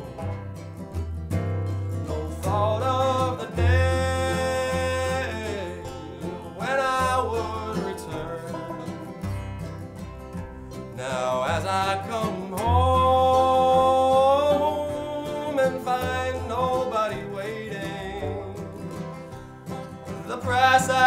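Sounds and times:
acoustic bluegrass band playing: 0:00.0 - 0:21.0.

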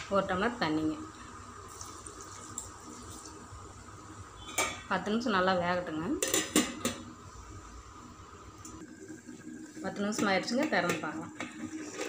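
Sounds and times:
water pouring into metal pot: 0:01.6 - 0:03.4.

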